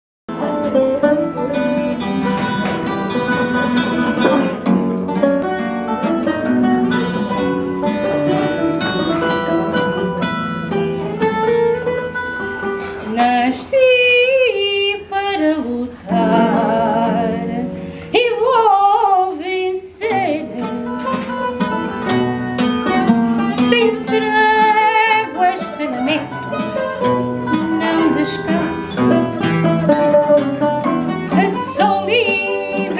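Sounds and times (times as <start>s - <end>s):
plucked guitars: 0.3s - 32.9s
woman singing with vibrato: 13.0s - 21.2s, 23.6s - 26.4s, 27.6s - 29.3s, 31.3s - 32.9s.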